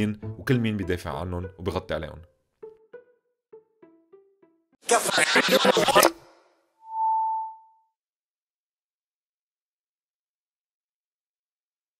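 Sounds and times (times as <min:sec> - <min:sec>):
electronic beep: 0:06.8 - 0:07.8.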